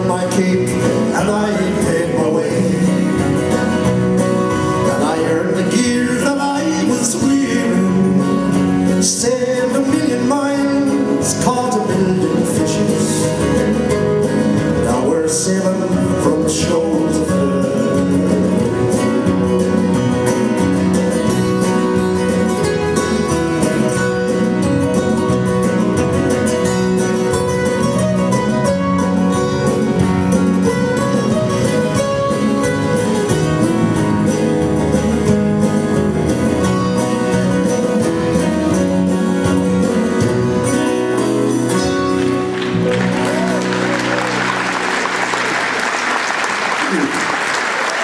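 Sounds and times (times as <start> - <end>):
acoustic folk band playing: 0.0 - 48.0.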